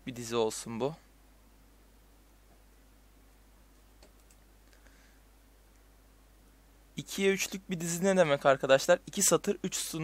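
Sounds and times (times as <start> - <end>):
computer keyboard keystrokes: 4.0 - 4.4.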